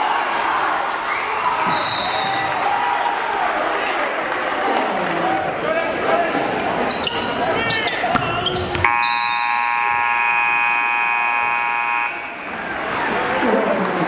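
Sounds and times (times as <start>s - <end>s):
crowd noise: 0.0s - 14.0s
scoreboard buzzer blaring: 8.8s - 12.3s.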